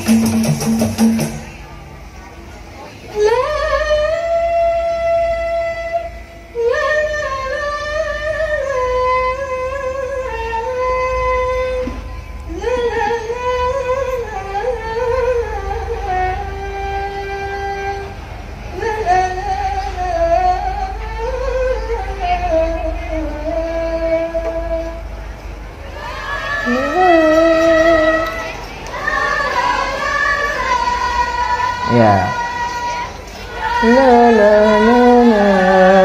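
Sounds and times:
faint accompaniment: 0.0 - 36.0
woman singing slow melody: 3.1 - 25.1, 26.0 - 36.0.

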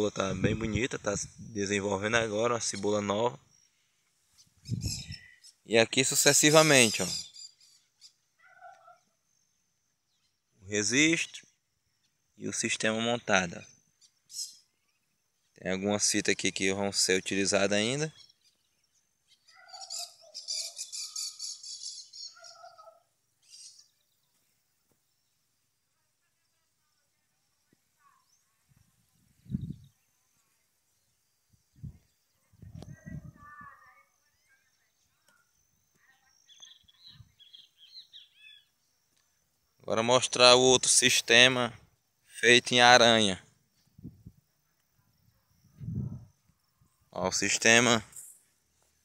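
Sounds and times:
faint bird chirp: 0.0 - 40.1
faint animal call: 8.4 - 9.2, 19.4 - 23.8, 32.4 - 37.2.

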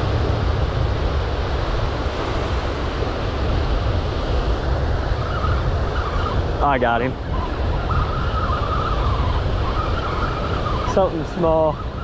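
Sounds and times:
surf rumbling: 0.0 - 12.0
wind on microphone: 0.0 - 12.0.

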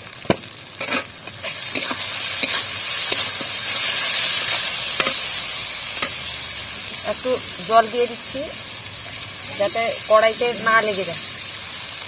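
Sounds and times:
spices sizzling in oil: 0.0 - 12.0
metal spatula scraping a pan: 0.8 - 6.3.

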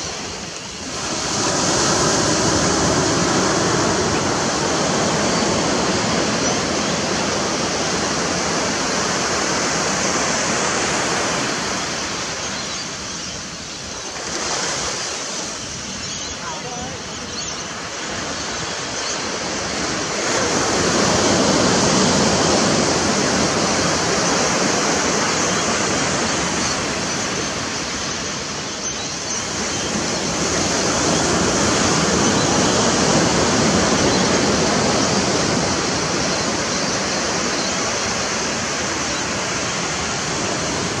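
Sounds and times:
small sea waves washing ashore: 0.0 - 41.0.

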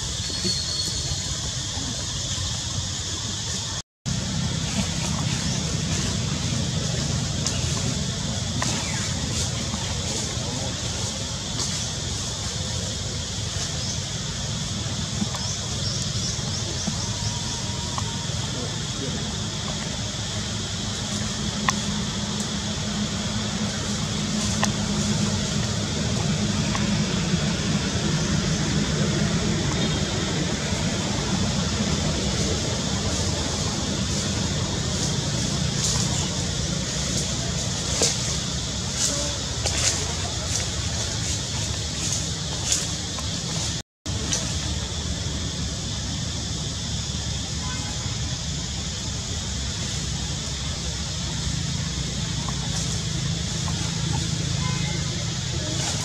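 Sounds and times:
low rumble: 0.0 - 47.0
hiss: 0.0 - 56.0.

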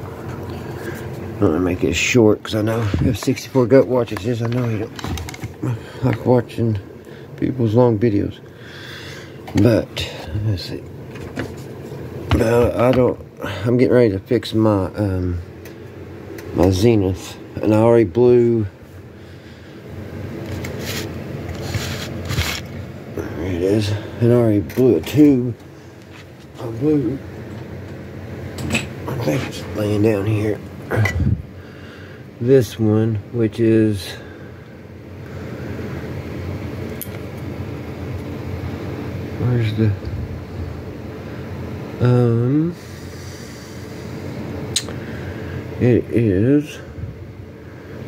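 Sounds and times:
constant noise: 0.0 - 48.0
low steady hum: 0.0 - 48.0
rubbing and scraping handling noise: 0.1 - 1.9, 2.6 - 6.6, 11.1 - 13.2, 20.3 - 22.9, 24.7 - 27.9.

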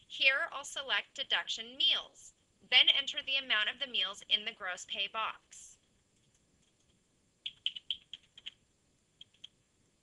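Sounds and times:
keyboard typing: 6.2 - 8.6, 9.2 - 9.6.

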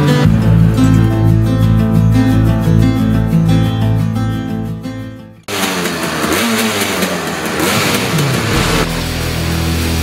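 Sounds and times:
heavy rock music: 0.0 - 5.4, 8.4 - 10.0
music: 0.0 - 5.5, 8.5 - 10.0
kart engines revving: 5.5 - 10.0
loud rushing noise: 7.2 - 10.0.

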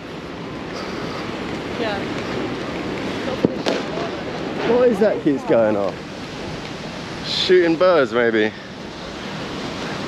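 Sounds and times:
sea surf: 0.0 - 10.0.

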